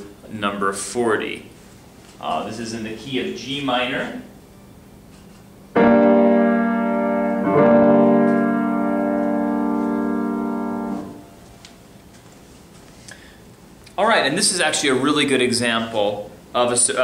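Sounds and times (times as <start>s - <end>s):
piano notes held: 5.7s - 11.8s.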